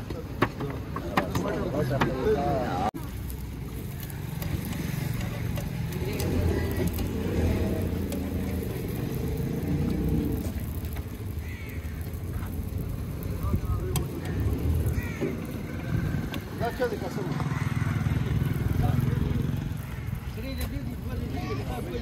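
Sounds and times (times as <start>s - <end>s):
people talking: 0.0s - 8.8s, 13.2s - 14.6s, 16.3s - 17.6s, 18.5s - 22.0s.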